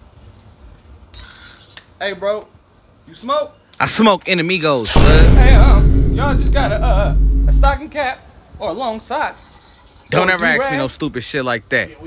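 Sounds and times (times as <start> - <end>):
low rumble: 4.9 - 7.9.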